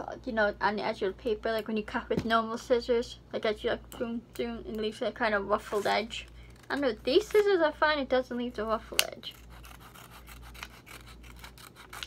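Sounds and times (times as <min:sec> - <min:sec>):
scissors snipping paper: 0:08.8 - 0:12.0.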